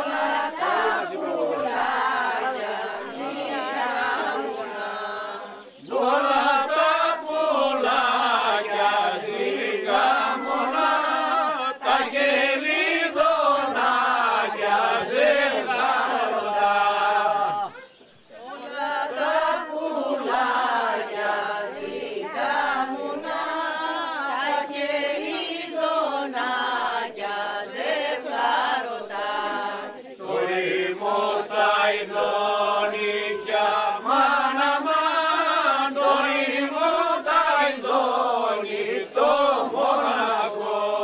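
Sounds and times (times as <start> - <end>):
group singing unaccompanied: 0.0 - 41.0.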